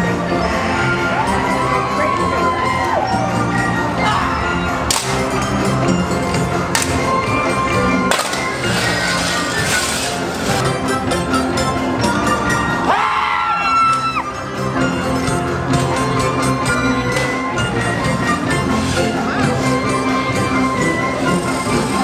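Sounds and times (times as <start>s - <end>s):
music over loudspeakers: 0.0s - 22.0s
sharp cracks: 8.1s - 10.2s.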